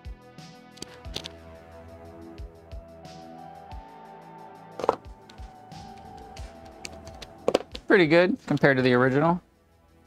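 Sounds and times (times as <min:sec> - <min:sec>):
soft background music: 0:00.0 - 0:10.0
objects knocking on wooden desk: 0:04.8 - 0:07.9.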